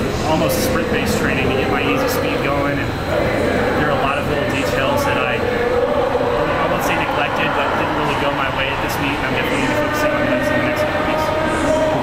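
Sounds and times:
man talking: 0.2s - 5.5s, 6.5s - 12.0s.

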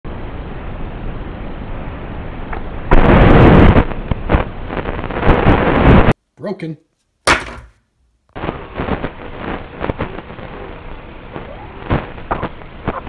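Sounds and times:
steady noise: 0.1s - 6.4s, 7.3s - 13.0s
sharp knocks: 7.3s - 7.8s.

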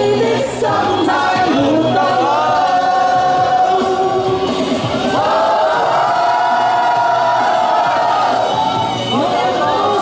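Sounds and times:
woman singing into microphone: 0.0s - 4.5s, 9.1s - 10.0s
pop music: 0.0s - 10.0s.

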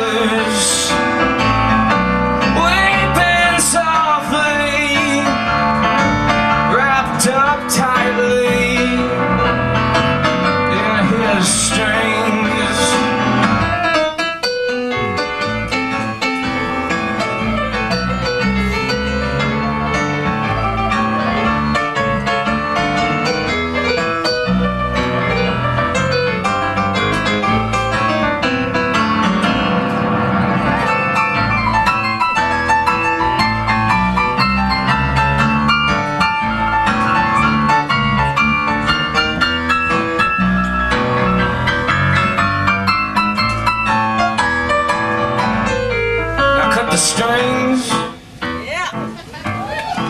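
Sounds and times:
electric piano runs: 0.0s - 48.6s
upright bass notes: 0.0s - 49.7s
guitar: 0.0s - 50.0s.

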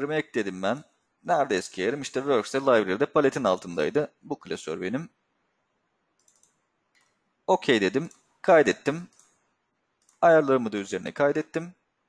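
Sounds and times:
computer mouse clicks: 6.2s - 7.2s, 9.1s - 9.4s, 10.0s - 10.2s.

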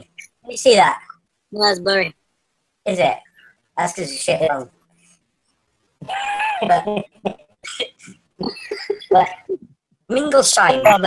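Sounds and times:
men laughing: 6.0s - 9.6s.

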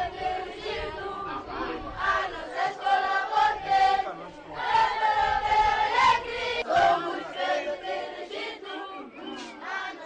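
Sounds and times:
crowd shouting and chanting: 0.3s - 10.0s.

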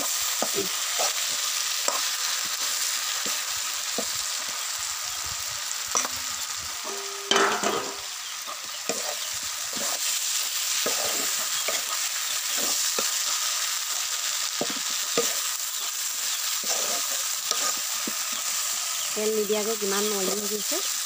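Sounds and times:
food sizzling in wok: 0.0s - 21.0s
spatula scraping pan: 8.6s - 13.6s, 14.5s - 18.4s.

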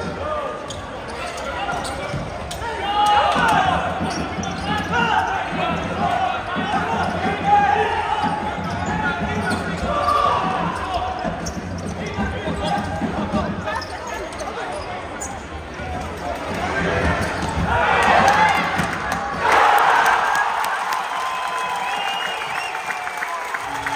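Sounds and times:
voices calling out in hall: 0.0s - 23.9s.

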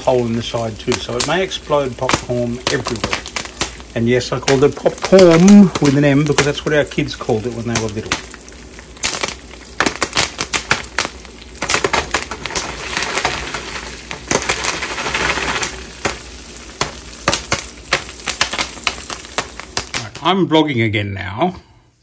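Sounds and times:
popcorn popping: 0.0s - 20.4s
pan shaken over flame: 11.6s - 16.2s.

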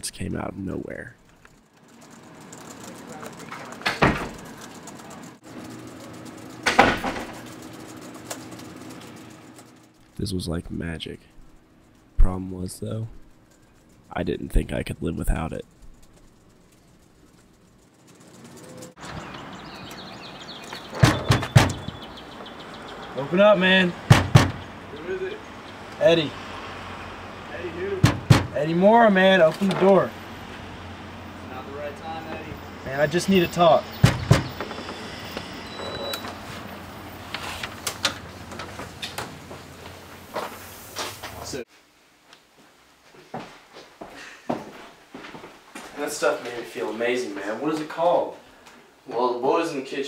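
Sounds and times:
fist knocking on door: 21.0s - 22.0s, 24.1s - 24.6s, 28.0s - 28.6s, 34.0s - 34.6s.

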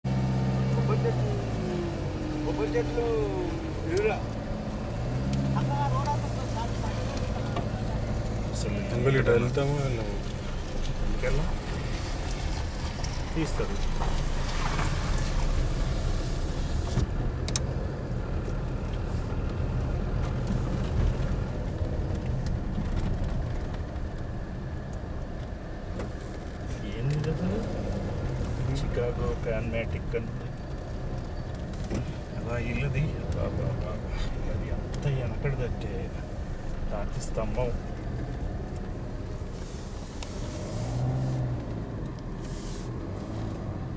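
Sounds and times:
vehicle engine humming: 0.0s - 43.9s
people talking: 0.6s - 1.6s, 2.3s - 4.3s, 5.6s - 10.2s, 13.4s - 13.9s, 26.7s - 27.7s, 28.6s - 30.5s, 32.4s - 36.2s, 36.9s - 37.8s.

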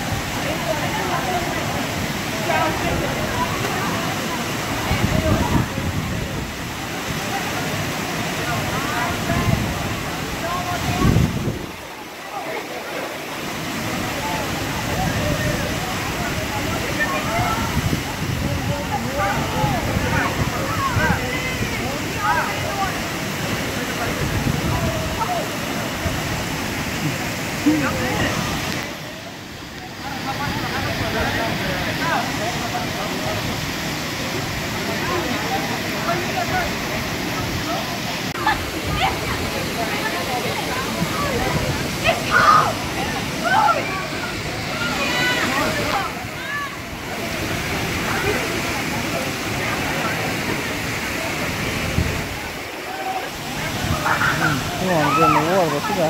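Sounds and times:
people chattering and calling: 0.0s - 56.0s
waterfall rushing: 0.0s - 56.0s.

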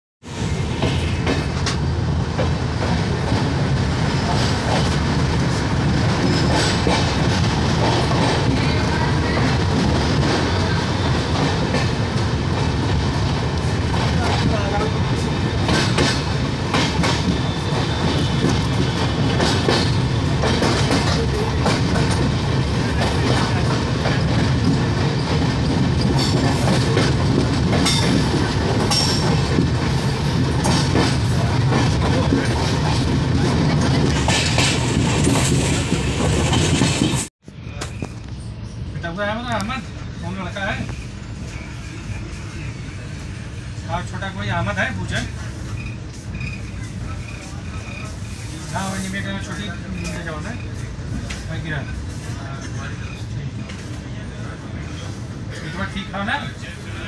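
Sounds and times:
train wheels rumbling on rail: 0.2s - 57.0s.

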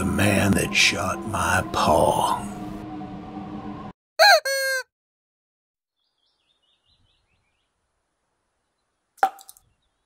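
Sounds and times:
bird-like call sound effect: 4.2s - 4.9s.

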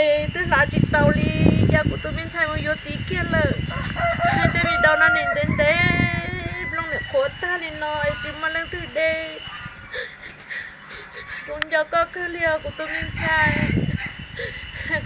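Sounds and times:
woman crying and talking: 0.0s - 3.6s, 4.2s - 13.8s, 14.4s - 15.0s.

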